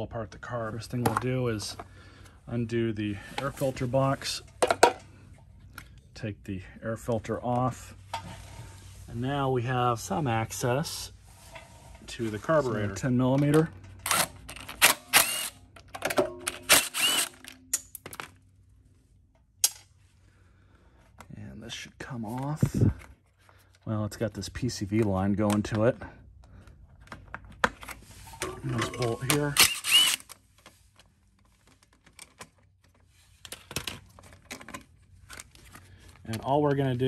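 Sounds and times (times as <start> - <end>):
impact driver running: 14.1 - 15.6, 16.6 - 17.4, 29.5 - 30.3.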